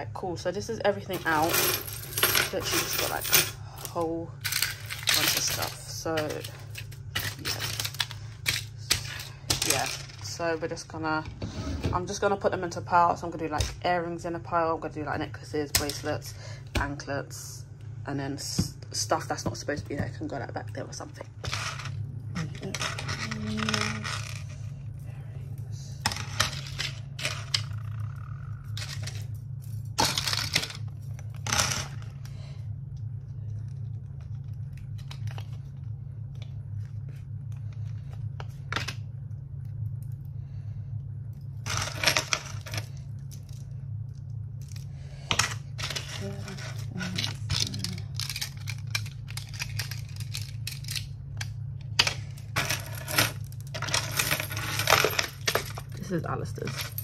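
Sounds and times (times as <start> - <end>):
steady low hum: 0.0 - 57.0
metal chains clinking: 1.1 - 7.9.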